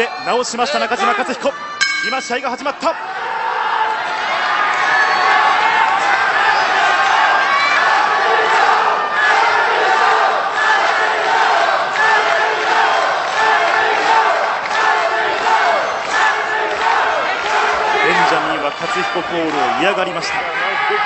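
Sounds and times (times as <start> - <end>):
arena crowd shouting: 0.0 - 21.0.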